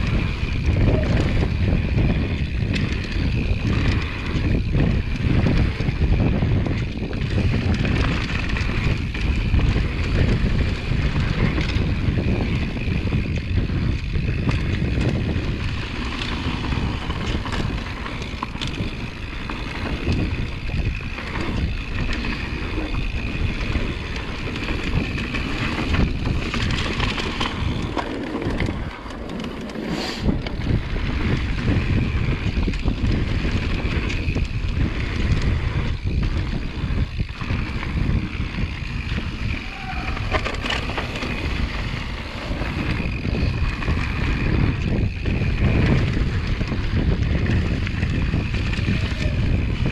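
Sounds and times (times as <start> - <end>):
bike frame and chain rattling: 0.0 - 49.9
tyres on loose dirt: 0.0 - 49.9
wind buffeting microphone: 0.0 - 49.9
short hiss: 29.9 - 30.3.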